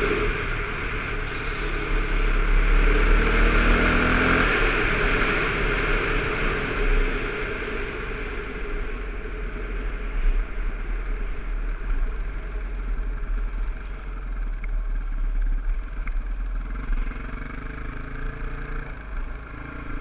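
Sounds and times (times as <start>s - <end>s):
wind rushing over microphone: 0.0s - 12.3s.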